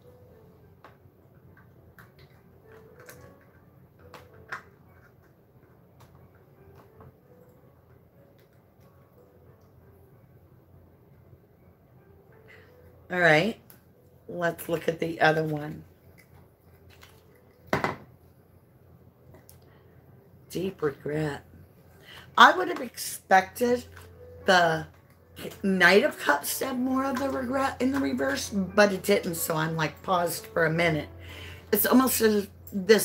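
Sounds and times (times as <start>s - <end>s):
faint room noise: 0.0s - 33.0s.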